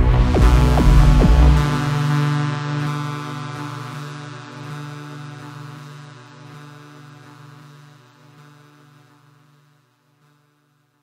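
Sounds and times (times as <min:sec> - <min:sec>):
low synthesizer drone: 0:00.0 - 0:09.1.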